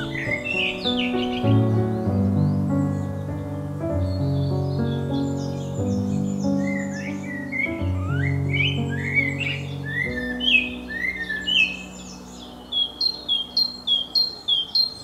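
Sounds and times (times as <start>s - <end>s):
soft background music: 0.0s - 15.0s
songbirds singing: 0.0s - 15.0s.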